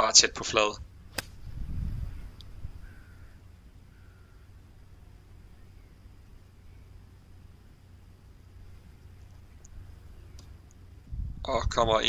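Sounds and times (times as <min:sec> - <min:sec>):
low rumble: 0:00.7 - 0:06.0, 0:08.4 - 0:12.0
golf club striking ball: 0:01.1 - 0:01.5.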